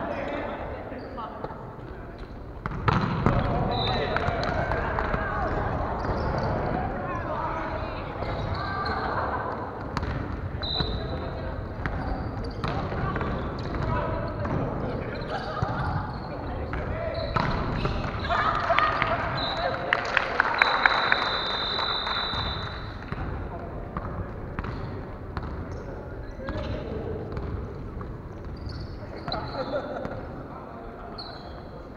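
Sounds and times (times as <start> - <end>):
players calling and chattering: 0.0 - 31.9.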